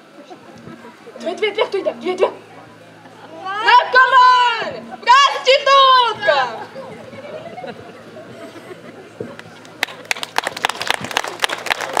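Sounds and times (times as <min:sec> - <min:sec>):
audience applauding: 0:09.4 - 0:12.0.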